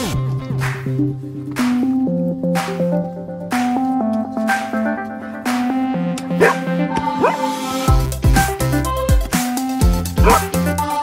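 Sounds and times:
electronic background music: 0:00.5 - 0:11.0
dog yelping: 0:06.4 - 0:07.6, 0:10.2 - 0:10.6.

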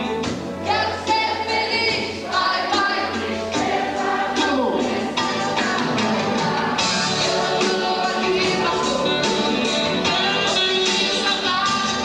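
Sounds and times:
drum kit: 0:00.0 - 0:12.0
electric keyboards: 0:00.0 - 0:12.0
woman singing: 0:00.7 - 0:03.2, 0:07.4 - 0:12.0.

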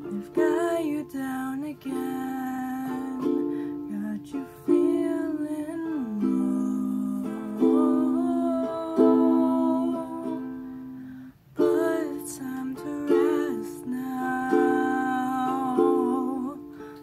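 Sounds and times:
person singing slow song: 0:00.0 - 0:17.0
ukulele strumming: 0:00.0 - 0:17.0.

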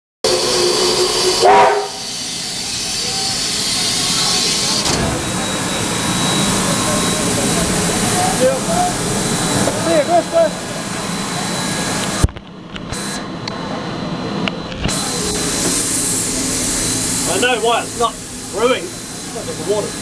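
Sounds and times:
steam locomotive whistle: 0:00.2 - 0:07.3
steam hissing: 0:00.3 - 0:12.2, 0:14.9 - 0:20.0.

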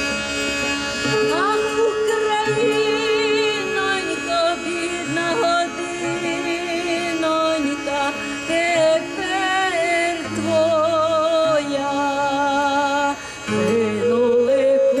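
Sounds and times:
low held tones: 0:00.0 - 0:15.0
woman singing through pa: 0:01.3 - 0:15.0.

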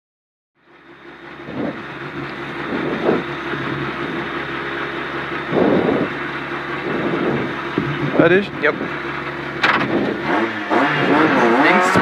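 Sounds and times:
car engine idling: 0:00.6 - 0:12.0.

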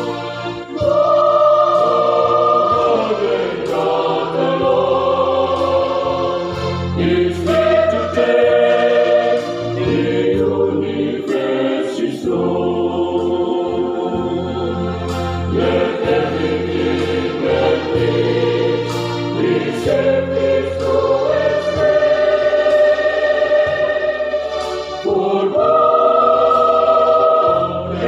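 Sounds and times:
choir singing in harmony: 0:00.0 - 0:28.0.

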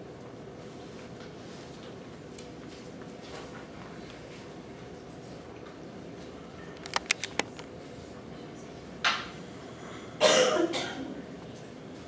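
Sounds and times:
person coughing: 0:10.2 - 0:11.2.

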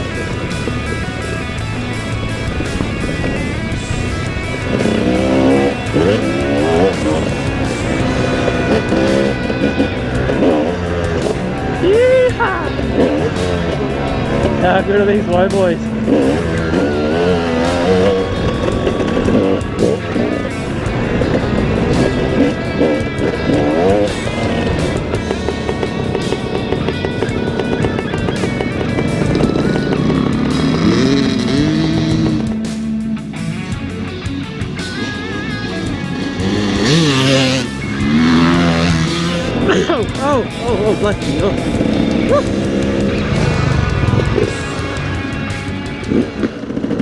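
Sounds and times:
background music: 0:00.0 - 0:47.0
dirt bike engines revving: 0:00.0 - 0:47.0
dirt bike passing close: 0:00.0 - 0:47.0.

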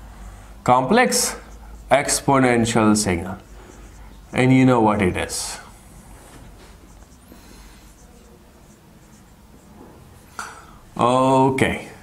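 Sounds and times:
marker pen squeaking on whiteboard: 0:01.0 - 0:10.3.

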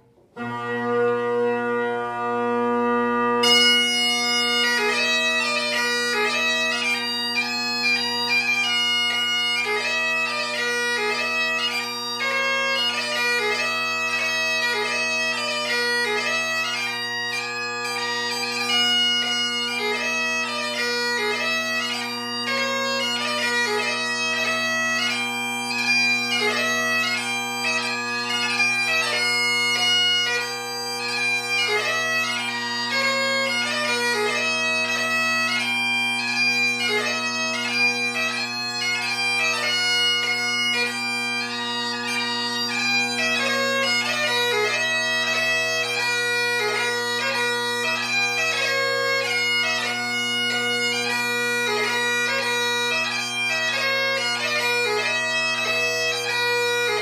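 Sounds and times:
bagpipe chanter playing quick notes: 0:00.0 - 0:57.0
bagpipe drones: 0:00.0 - 0:57.0.

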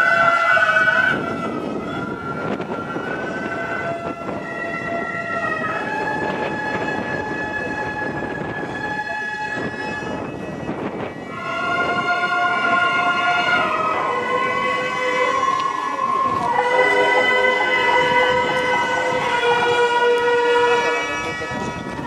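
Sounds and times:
mouth organ and reeds holding notes: 0:00.0 - 0:22.0.

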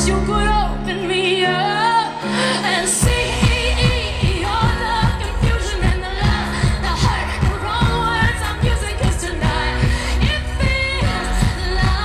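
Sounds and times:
live pop band: 0:00.0 - 0:12.0
woman singing lead: 0:00.0 - 0:12.0
steady kick-drum beat: 0:03.0 - 0:12.0.

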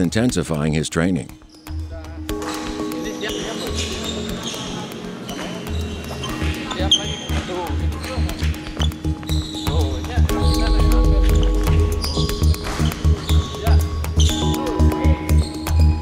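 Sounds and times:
background music with low beat: 0:00.0 - 0:16.0.

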